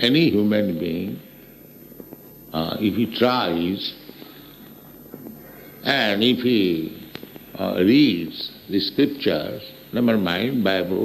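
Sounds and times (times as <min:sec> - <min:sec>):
man speaking: 0:00.0 - 0:01.4, 0:02.5 - 0:04.2, 0:05.8 - 0:11.0
faint recording hiss: 0:00.0 - 0:11.0.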